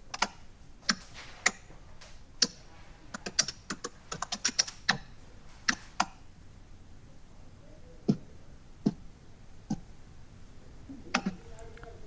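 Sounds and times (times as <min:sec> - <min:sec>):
sharp clicks: 0:00.1 - 0:01.6, 0:02.4 - 0:05.1, 0:05.7 - 0:06.2.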